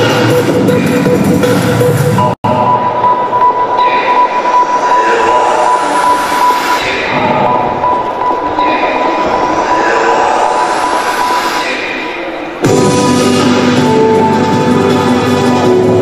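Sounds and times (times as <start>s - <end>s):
high-pitched squeal: 1.5s - 16.0s
rising sweeps: 2.5s - 16.0s.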